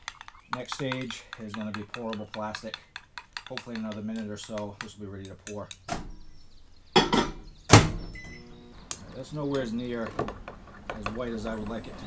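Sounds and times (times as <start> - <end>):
microwave door thunk: 7.0 - 8.2.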